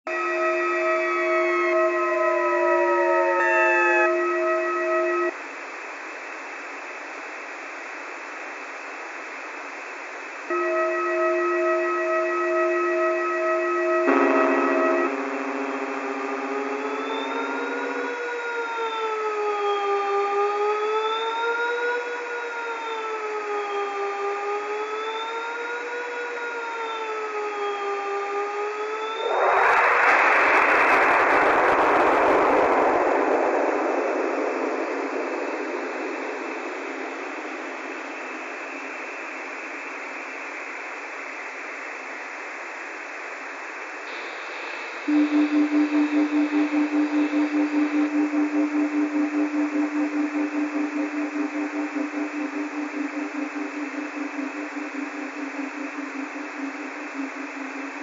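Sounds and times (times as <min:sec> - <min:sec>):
beeping tones: 0:00.1 - 0:05.3, 0:10.5 - 0:18.6, 0:45.1 - 0:58.0
synthesized electronic tones: 0:00.1 - 0:05.3, 0:10.5 - 0:18.9, 0:45.0 - 0:58.0
loud blast of noise: 0:14.0 - 0:19.2, 0:29.1 - 0:39.9
static hiss: 0:33.7 - 0:58.0.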